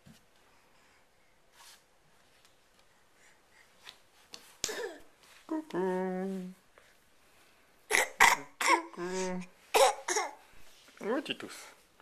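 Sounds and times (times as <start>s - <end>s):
toddler coughing: 4.7s - 5.1s, 7.9s - 9.1s, 9.7s - 10.4s.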